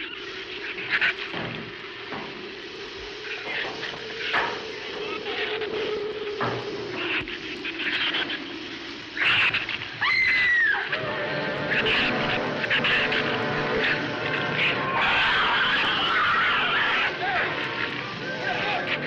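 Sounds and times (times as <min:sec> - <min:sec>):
steady hum: 0:00.0 - 0:19.0
creature chittering and snarling: 0:14.5 - 0:17.6.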